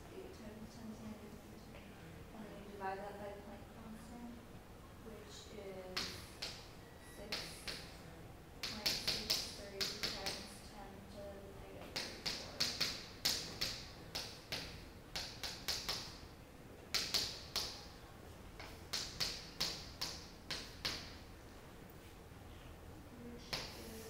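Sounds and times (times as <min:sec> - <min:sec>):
chalk tapping and scratching: 0:07.2 - 0:07.9, 0:08.6 - 0:10.5, 0:11.8 - 0:16.2, 0:16.9 - 0:17.8, 0:18.6 - 0:21.2.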